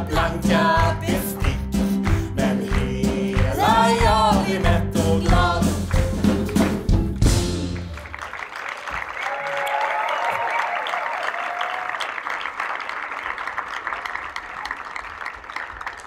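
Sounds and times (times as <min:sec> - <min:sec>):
audience applauding: 0:00.0 - 0:16.0.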